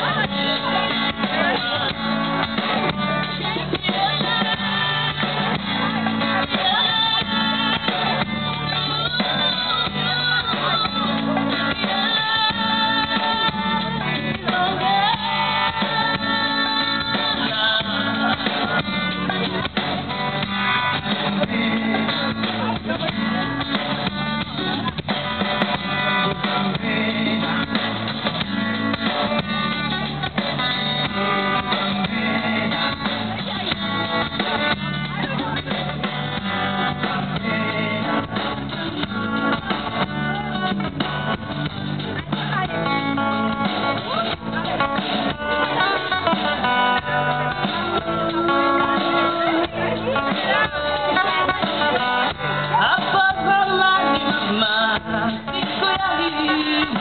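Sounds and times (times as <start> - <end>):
drum kit beat: 0.0 - 57.0
guitar: 0.0 - 57.0
woman singing: 0.0 - 57.0.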